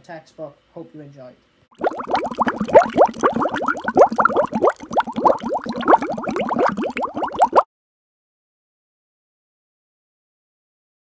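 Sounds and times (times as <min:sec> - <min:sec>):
rapid rising bubble bloops: 0:01.7 - 0:07.7.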